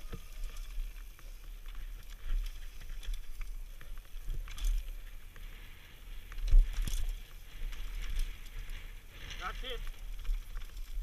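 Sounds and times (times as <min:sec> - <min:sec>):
bike rattling: 0:00.0 - 0:11.0
tyres crunching over gravel: 0:00.0 - 0:11.0
wind rumble on microphone: 0:00.0 - 0:11.0.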